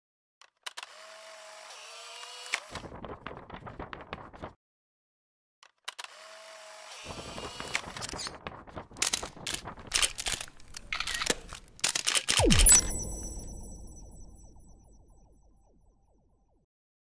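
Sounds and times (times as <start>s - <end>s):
camera shutter clicks: 9.9s - 12.8s
camera motor whirr: 10.0s - 12.4s.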